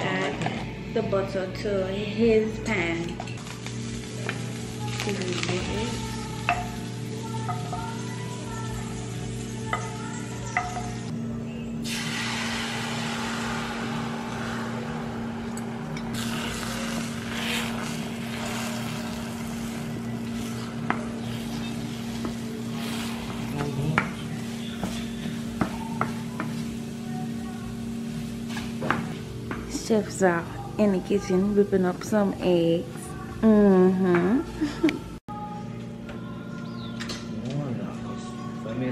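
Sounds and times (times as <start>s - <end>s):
eggs sizzling in a frying pan: 2.6s - 11.1s, 11.8s - 34.5s
wooden spatula scraping pan: 16.2s - 26.2s.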